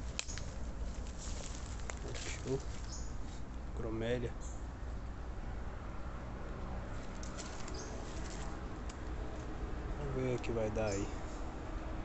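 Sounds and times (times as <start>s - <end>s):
footsteps on dry leaves: 0.0s - 3.4s, 7.0s - 8.6s.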